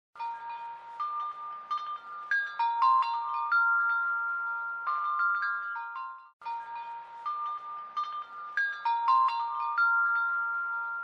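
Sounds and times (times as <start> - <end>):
chimes ringing bright notes: 0.2 - 11.0.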